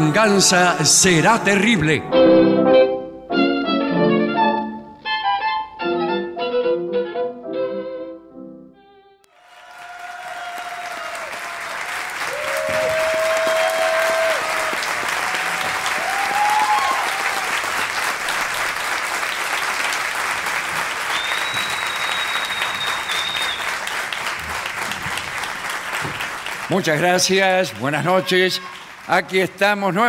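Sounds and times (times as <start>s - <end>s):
audience applauding: 9.3s - 30.0s
high whistle: 21.1s - 23.8s.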